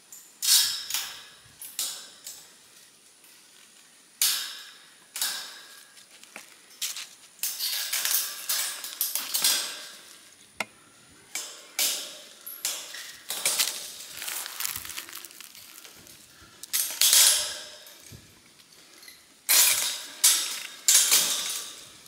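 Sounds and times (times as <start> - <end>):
metal wire clinks and rattles: 0.1 - 3.6, 6.7 - 10.3, 11.3 - 22.0.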